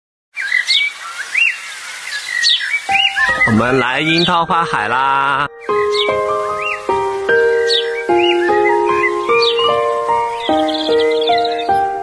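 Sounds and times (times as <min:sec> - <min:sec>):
small bird singing: 0:00.4 - 0:12.0.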